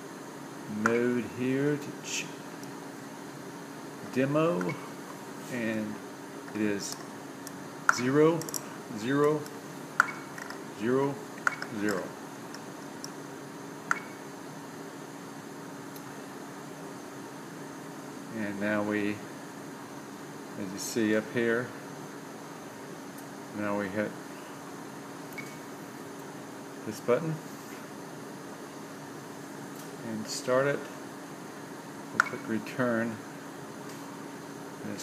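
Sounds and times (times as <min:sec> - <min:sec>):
fan hum: 0:00.0 - 0:35.0.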